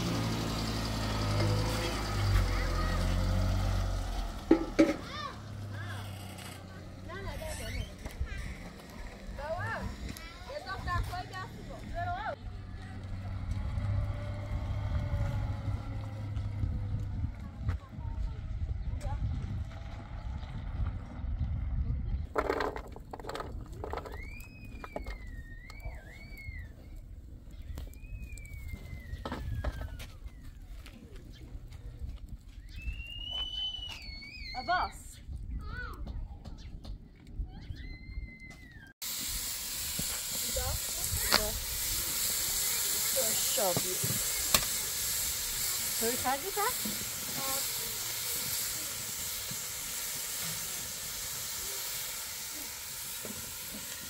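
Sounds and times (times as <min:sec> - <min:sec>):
pickup truck engine running: 0:00.0 - 0:07.3.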